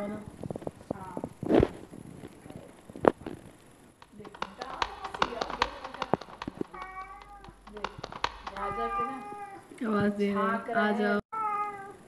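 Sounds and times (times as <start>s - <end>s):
light clicks and taps: 4.0s - 9.0s
cat meowing: 6.7s - 7.6s, 8.4s - 9.7s, 11.3s - 12.0s.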